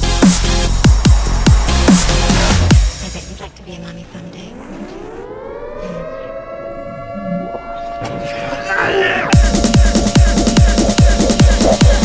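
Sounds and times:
siren-like synth tone rising: 4.4s - 9.4s.

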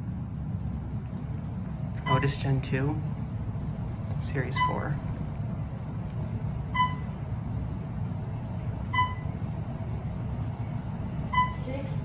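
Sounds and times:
elevator ride hum: 0.0s - 12.0s.

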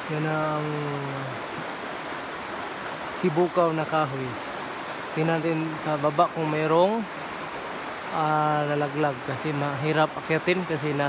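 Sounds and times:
man speaking: 0.0s - 1.4s, 8.2s - 11.0s
rushing forest background noise: 0.0s - 11.0s.

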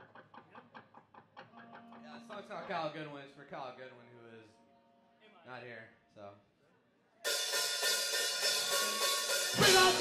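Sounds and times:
live band playing: 7.2s - 10.0s
cymbal wash over drums: 7.3s - 10.0s.

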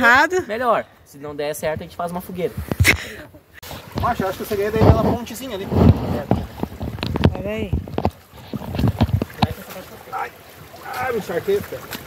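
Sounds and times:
footsteps splashing through water: 3.6s - 12.0s.

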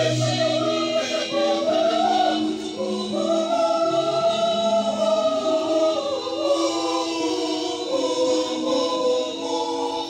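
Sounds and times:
mixed choir singing gospel: 0.0s - 10.0s.

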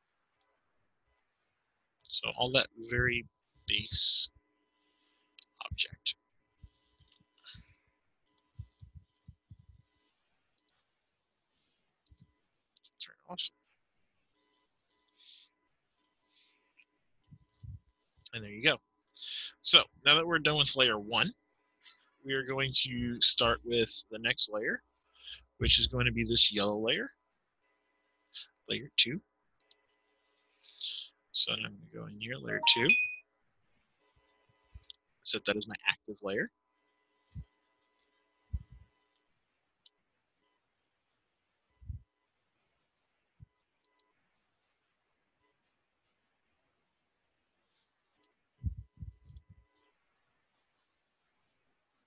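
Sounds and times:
man's voice: 2.1s - 4.3s, 5.5s - 6.1s, 13.0s - 13.5s, 18.3s - 21.3s, 22.3s - 24.8s, 25.6s - 27.1s, 28.7s - 29.2s, 30.8s - 33.1s, 35.3s - 36.5s.

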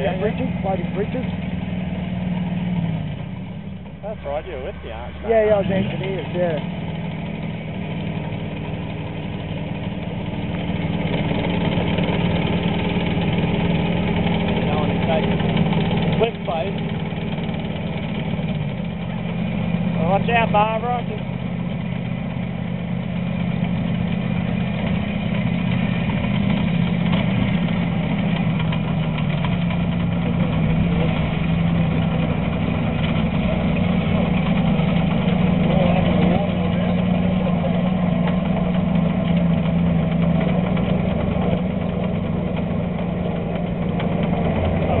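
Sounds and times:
tracked vehicle engine running: 0.0s - 45.0s.

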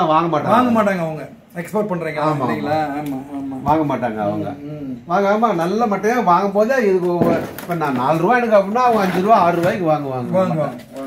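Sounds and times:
man talking: 0.0s - 11.0s
sharp knock: 7.2s - 7.8s.

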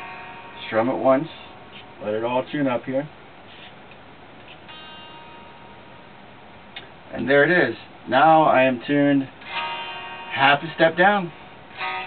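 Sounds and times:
guitar strum: 0.0s - 2.9s, 4.4s - 6.1s, 9.2s - 12.0s.

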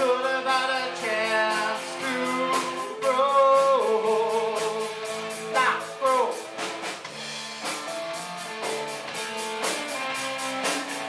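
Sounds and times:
man singing: 0.0s - 6.5s
drum kit: 0.0s - 11.0s
electric guitars: 0.0s - 11.0s.

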